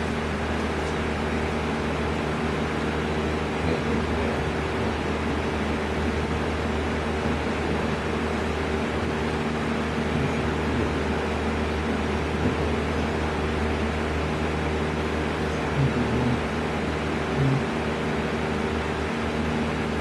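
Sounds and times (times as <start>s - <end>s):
machine hum with droning tones: 0.0s - 20.0s.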